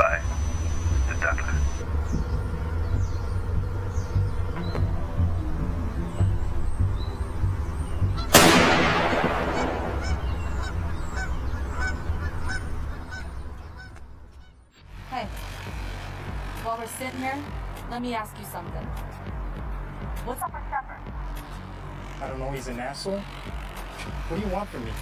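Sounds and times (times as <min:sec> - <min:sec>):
low rumble: 0:01.8 - 0:13.8
geese honking: 0:05.0 - 0:14.6
rifle shot with echo: 0:08.3 - 0:10.8.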